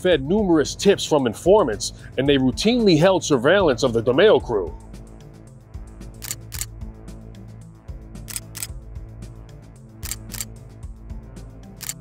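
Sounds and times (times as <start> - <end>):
background music: 0.0 - 12.0
camera shutter clicks: 6.2 - 6.7, 8.3 - 8.8, 10.0 - 10.6, 11.8 - 12.0.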